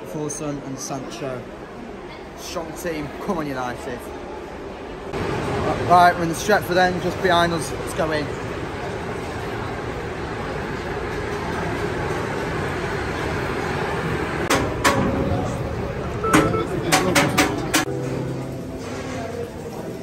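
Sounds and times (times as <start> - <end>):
crowd chatter: 0.0 - 20.0
turnstile mechanism clacks: 5.2 - 20.0
ticket scanner beep: 16.1 - 17.8.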